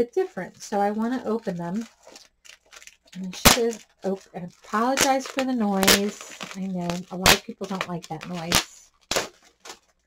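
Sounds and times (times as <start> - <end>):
plastic wrapping crinkling: 1.0 - 10.0
sharp crack of plastic: 2.4 - 3.9, 4.9 - 10.0.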